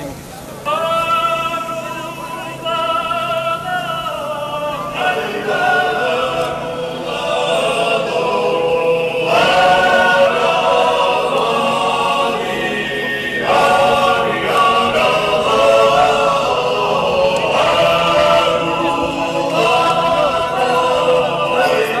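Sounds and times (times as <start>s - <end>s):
group singing a chant-like hymn: 2.5s - 22.0s.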